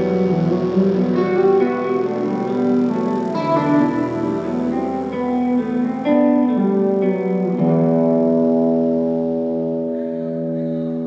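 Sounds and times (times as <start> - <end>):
band chord on electric guitars and keyboard: 0.0 - 11.0.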